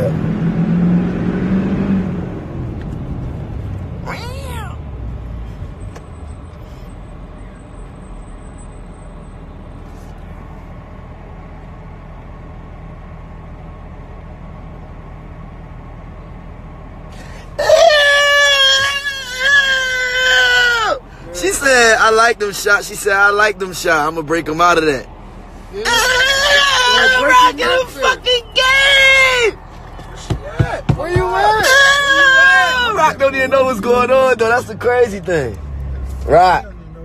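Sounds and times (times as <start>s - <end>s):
low vehicle rumble: 0.0s - 37.0s
short rising and falling cry: 17.2s - 21.0s.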